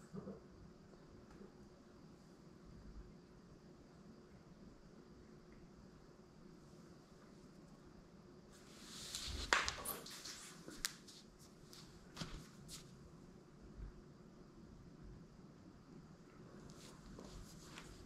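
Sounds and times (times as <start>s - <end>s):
rustling and handling noise: 8.5s - 13.1s, 16.5s - 18.0s
person getting up from floor: 11.8s - 12.9s.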